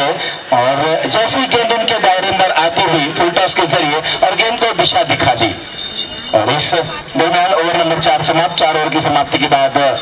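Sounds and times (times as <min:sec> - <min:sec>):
man commentating: 0:00.0 - 0:05.7, 0:06.3 - 0:10.0.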